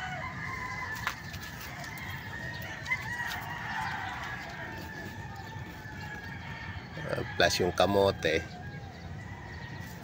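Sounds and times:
rooster crowing: 0.0s - 9.9s.

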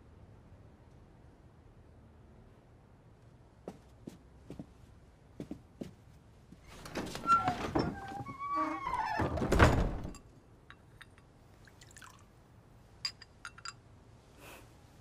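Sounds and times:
porcelain clinks: 13.0s - 13.8s.

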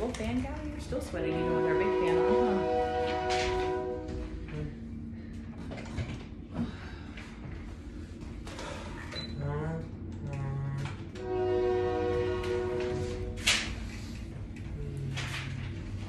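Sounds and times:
train rumbling: 0.0s - 16.0s
train horn chord: 1.1s - 4.8s, 10.8s - 14.4s.

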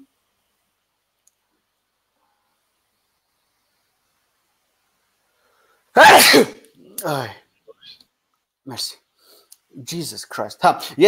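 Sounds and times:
man sneezing loudly: 6.0s - 7.4s.

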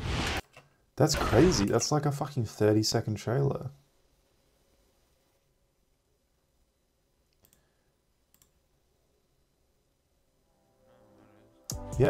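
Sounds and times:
computer mouse clicks: 7.3s - 7.7s, 8.3s - 8.6s.

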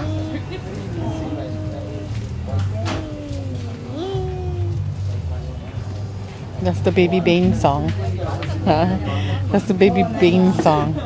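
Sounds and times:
young child singing: 0.0s - 2.2s, 2.8s - 4.8s.

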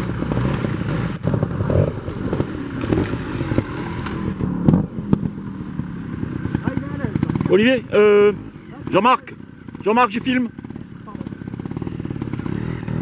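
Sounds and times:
motorcycle engine with throttle blips: 0.0s - 13.0s.

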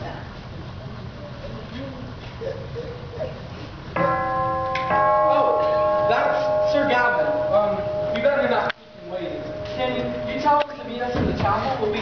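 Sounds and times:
bell-like chime chord: 4.0s - 10.6s.

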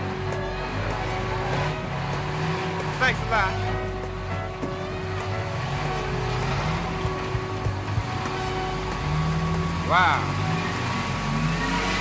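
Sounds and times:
low traffic rumble: 0.0s - 12.0s
vehicle engine running: 0.0s - 12.0s.

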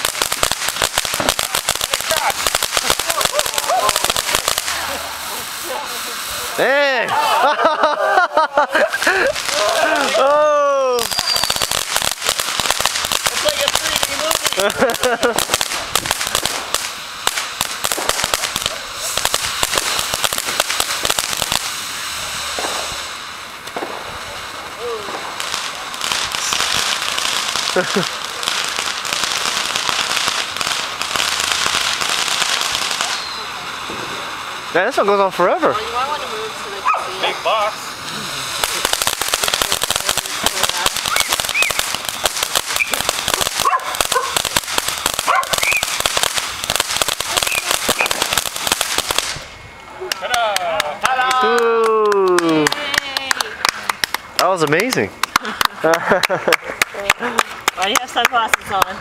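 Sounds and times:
firework crackling and hissing: 0.0s - 59.0s.

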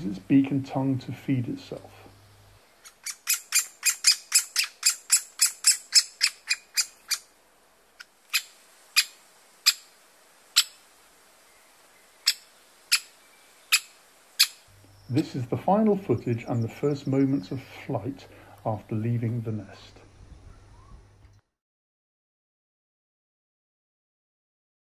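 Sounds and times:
woodpecker chick calling: 2.8s - 7.3s, 8.0s - 9.9s, 10.5s - 10.8s, 12.2s - 15.2s.

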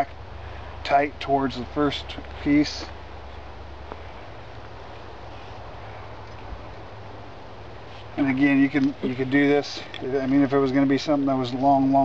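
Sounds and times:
low hum: 0.0s - 12.0s
outdoor background hiss: 0.0s - 12.0s.

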